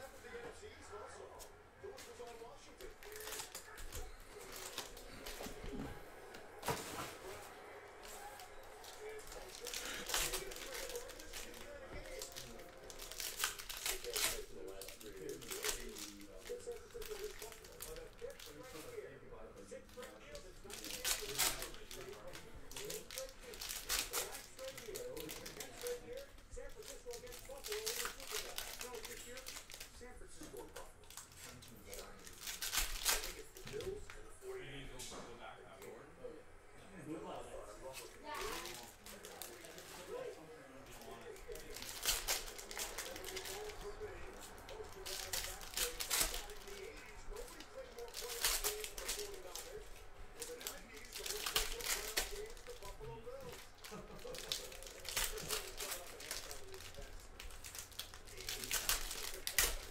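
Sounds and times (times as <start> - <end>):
card stacks being handled: 0.0 - 19.0, 19.6 - 34.2, 37.9 - 59.9
foil wrappers tearing and crinkling: 2.0 - 19.0, 19.6 - 34.0, 37.9 - 59.9.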